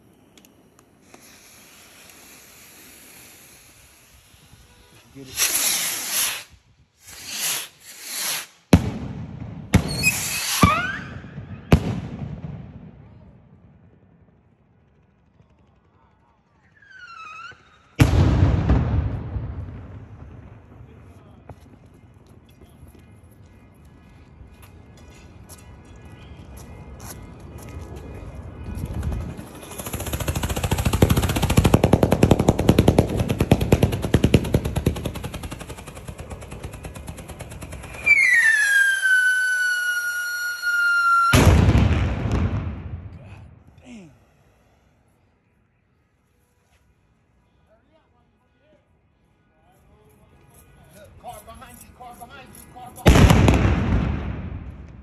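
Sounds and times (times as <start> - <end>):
falling firework whistle: 1.1 - 8.6, 9.8 - 11.8, 16.6 - 18.3, 38.0 - 42.0
rapid firework popping: 5.2 - 12.6, 28.8 - 42.9
firework bang: 7.1 - 13.0, 17.4 - 21.7, 37.9 - 43.6, 53.1 - 55.0.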